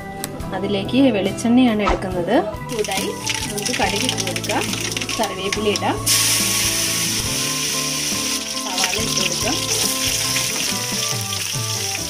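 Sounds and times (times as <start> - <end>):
background music: 0.0 - 12.0
chillies sizzling in hot oil: 2.7 - 12.0.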